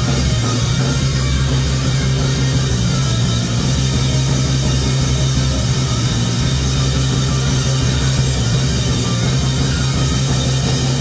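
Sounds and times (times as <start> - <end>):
distorted electric guitar: 0.0 - 11.0
drum kit: 0.0 - 11.0.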